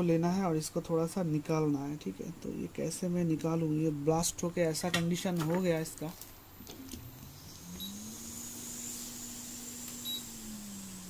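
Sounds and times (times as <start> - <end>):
blower fan humming: 0.0 - 11.0.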